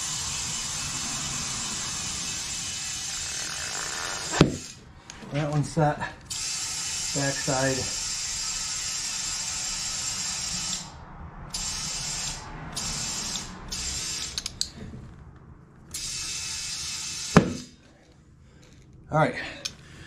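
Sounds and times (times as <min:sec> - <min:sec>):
compressed air hissing into tire: 0:00.0 - 0:04.9, 0:06.3 - 0:14.8, 0:15.9 - 0:17.8
tire bead popping onto rim: 0:17.4 - 0:17.8.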